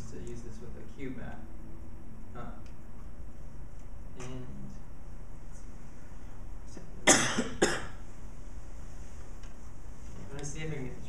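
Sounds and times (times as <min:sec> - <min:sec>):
person coughing: 0:07.0 - 0:08.0.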